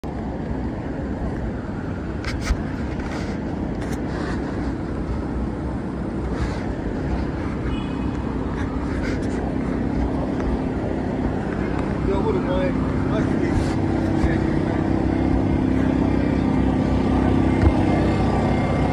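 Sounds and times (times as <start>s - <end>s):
traffic noise: 0.0s - 18.9s
passers-by talking: 8.5s - 18.9s.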